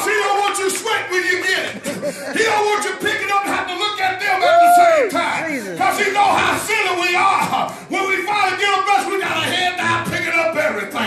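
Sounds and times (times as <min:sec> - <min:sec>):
preacher shouting: 0:04.0 - 0:07.6.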